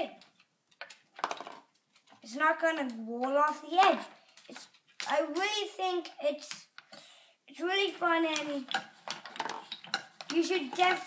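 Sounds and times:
marbles clicking on toy steps: 0:00.2 - 0:05.5, 0:08.3 - 0:11.0.

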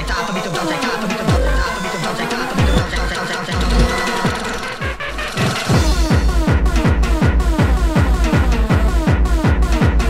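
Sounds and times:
hard dance music: 0:00.0 - 0:10.0
dense synths: 0:01.3 - 0:06.9
heavy kick drums: 0:02.6 - 0:04.6, 0:05.8 - 0:10.0.

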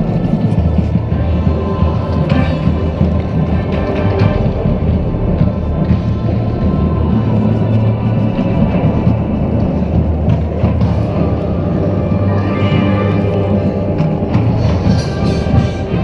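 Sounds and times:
marching band playing: 0:08.8 - 0:16.0.

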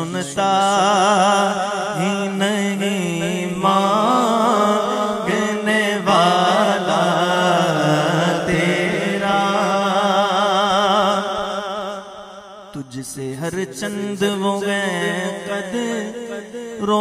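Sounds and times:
low vocal drone: 0:00.0 - 0:11.4
man singing unaccompanied: 0:00.0 - 0:12.1, 0:12.8 - 0:17.0.

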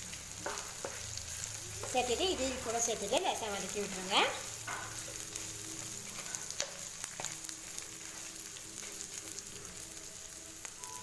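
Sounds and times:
onions sizzling in hot oil: 0:00.0 - 0:11.0
wooden spatula stirring: 0:00.4 - 0:09.4.

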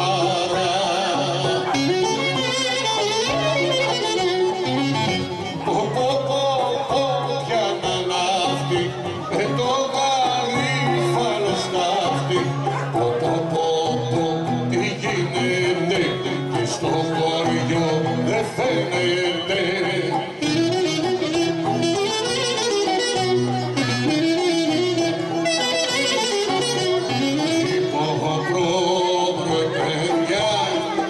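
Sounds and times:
low accompaniment: 0:00.0 - 0:31.0
violin folk melody: 0:00.0 - 0:31.0.

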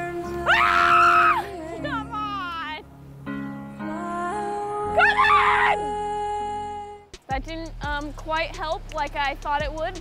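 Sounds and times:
background music with held notes: 0:00.0 - 0:10.0
person screaming: 0:05.0 - 0:05.8.

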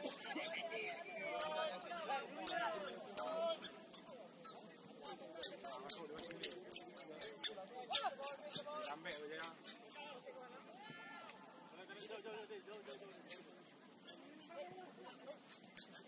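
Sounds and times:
distant voices calling: 0:00.0 - 0:10.0.

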